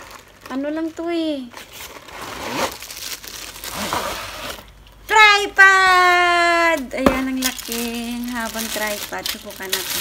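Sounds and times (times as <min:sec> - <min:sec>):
plastic wrapping crinkling: 0:00.0 - 0:10.0.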